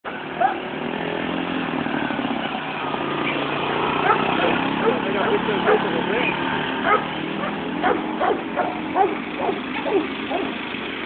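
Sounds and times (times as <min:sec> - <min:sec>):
atv engine running: 0:00.1 - 0:11.0.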